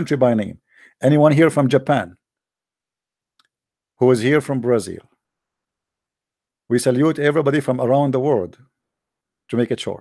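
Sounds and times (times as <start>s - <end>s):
man speaking: 0.0s - 2.2s, 4.0s - 5.2s, 6.7s - 8.7s, 9.5s - 10.0s
faint click: 3.3s - 3.6s.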